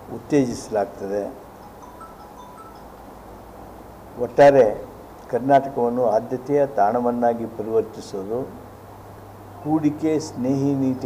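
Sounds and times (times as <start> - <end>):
faint high tinkling tones: 1.1 - 4.8.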